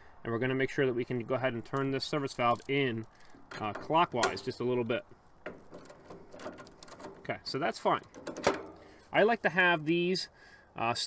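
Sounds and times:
wrench clicking and scraping on metal: 1.7 - 4.6, 5.4 - 7.3, 8.0 - 9.0.

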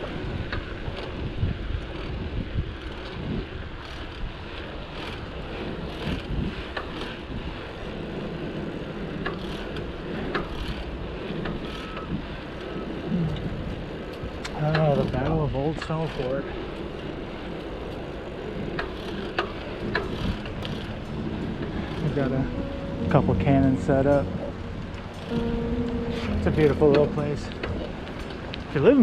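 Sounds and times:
wind rushing over microphone: 0.0 - 15.8, 16.5 - 29.0
bicycle clicks and rattles: 0.0 - 22.4
steady rumble: 17.1 - 29.0.

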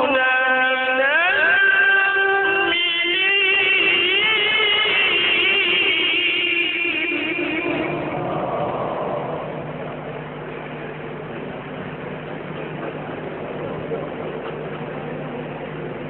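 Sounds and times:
low hum: 5.4 - 16.0.

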